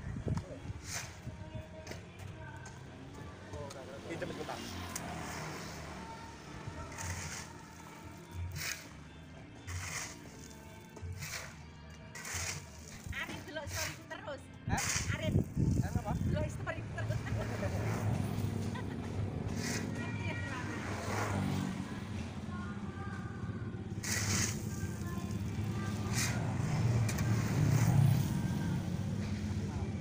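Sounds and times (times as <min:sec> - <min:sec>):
road traffic hum: 0:00.0 - 0:30.0
vehicle passing: 0:03.0 - 0:08.9, 0:14.8 - 0:30.0
shovel scraping into gravel: 0:06.9 - 0:09.0, 0:09.6 - 0:14.0, 0:14.8 - 0:16.2, 0:19.5 - 0:20.0, 0:24.0 - 0:28.3.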